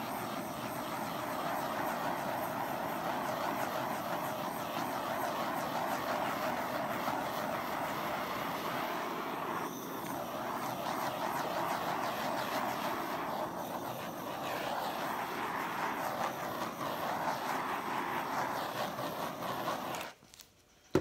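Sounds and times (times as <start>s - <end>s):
butane torch hissing: 0.0s - 21.0s.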